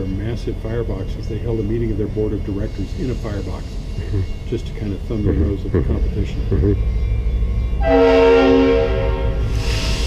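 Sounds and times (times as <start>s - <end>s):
low rumble: 0.0s - 10.0s
train horn: 7.8s - 10.0s.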